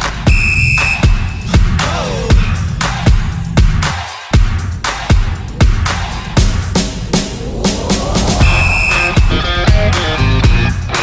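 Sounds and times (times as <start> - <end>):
electronic dance music: 0.0 - 11.0
high whistle-like synth note: 0.3 - 1.6, 8.4 - 9.6
deep kick drum: 0.3 - 7.6
falling synth glide: 5.7 - 9.9.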